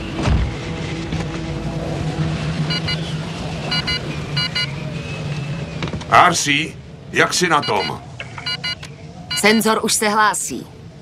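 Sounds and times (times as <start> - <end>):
low snowstorm wind drone: 0.0 - 11.0
short electronic beeps: 2.7 - 3.0, 3.7 - 4.8, 7.6 - 9.6.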